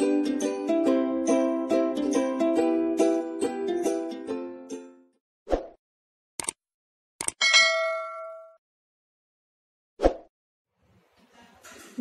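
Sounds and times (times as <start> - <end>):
quick clicks: 6.4 - 6.6, 7.2 - 7.4
notification bell ding: 7.4 - 8.6.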